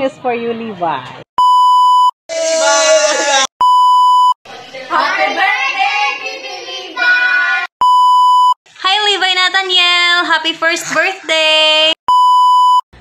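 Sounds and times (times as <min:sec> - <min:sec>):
electronic beeps: 0:01.4 - 0:02.1, 0:03.6 - 0:04.4, 0:07.8 - 0:08.6, 0:12.1 - 0:12.8
people greeting: 0:02.3 - 0:03.5, 0:04.5 - 0:07.7.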